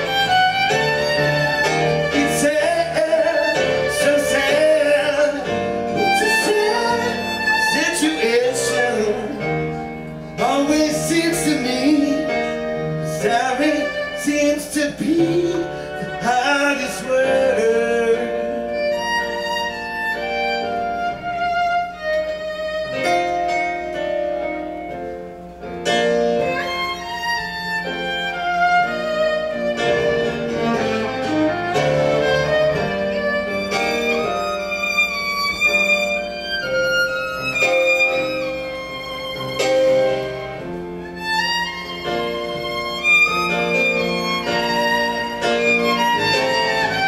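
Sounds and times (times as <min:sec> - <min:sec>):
piano accompaniment: 0:00.0 - 0:47.0
violin slow melody: 0:00.0 - 0:47.0.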